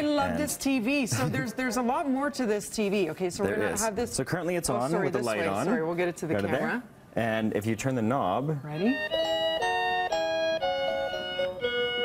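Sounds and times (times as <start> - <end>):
simple music box tune: 8.9 - 12.0.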